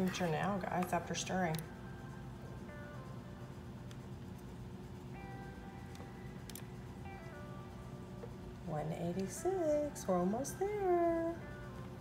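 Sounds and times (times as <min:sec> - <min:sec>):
soft music of held notes: 0:00.0 - 0:12.0.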